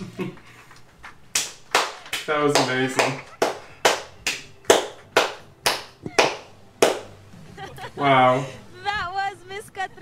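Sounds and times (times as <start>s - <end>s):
person clapping hands slowly: 1.3s - 7.1s.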